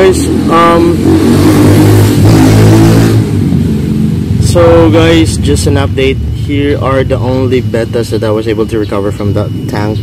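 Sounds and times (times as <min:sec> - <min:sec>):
engine revving: 0:00.0 - 0:10.0.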